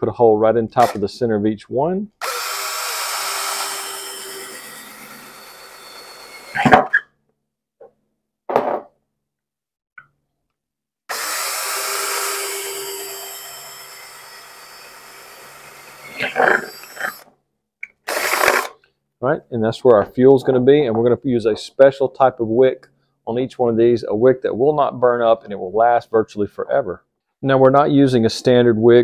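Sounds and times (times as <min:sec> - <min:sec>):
drill boring through metal lids: 0:02.2 - 0:06.8, 0:11.1 - 0:17.2, 0:18.0 - 0:18.8.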